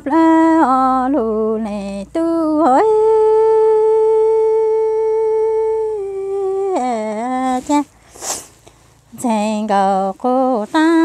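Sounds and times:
woman singing: 0:00.0 - 0:08.0, 0:09.1 - 0:11.0.

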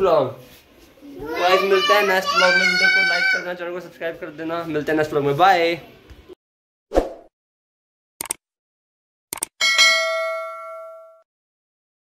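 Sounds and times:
clicks: 0:09.3 - 0:09.5
bell-like ding: 0:09.6 - 0:11.3.

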